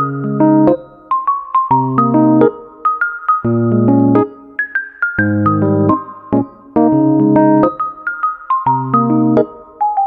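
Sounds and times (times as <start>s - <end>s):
slow piano melody over chords: 1.7s - 10.0s.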